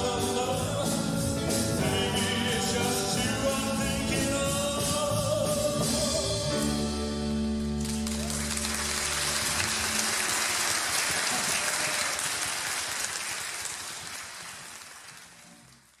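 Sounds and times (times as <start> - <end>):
audience applauding: 7.8 - 16.0.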